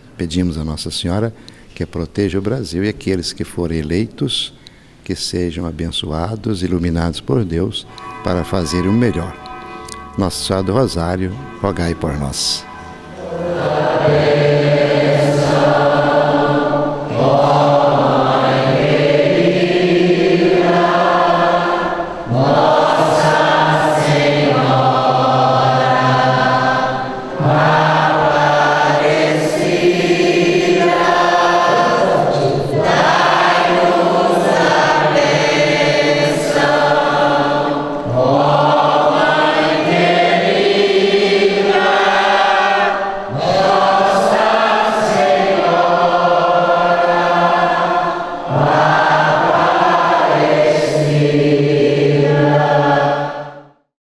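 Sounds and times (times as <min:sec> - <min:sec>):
congregation singing a hymn: 0:02.0 - 0:53.8.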